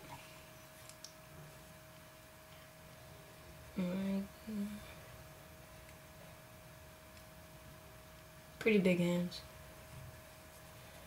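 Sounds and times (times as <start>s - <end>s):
faint steady whine: 0.0s - 11.0s
person humming: 3.7s - 5.0s.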